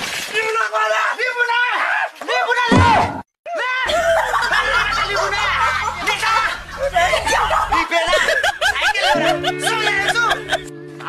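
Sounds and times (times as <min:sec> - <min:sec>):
people snickering and chuckling: 0:03.8 - 0:10.8.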